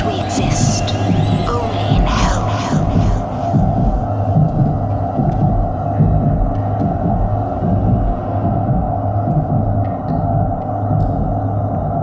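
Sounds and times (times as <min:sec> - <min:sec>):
irregular throbbing pulse: 0:00.0 - 0:12.0
steady low hum: 0:00.0 - 0:12.0.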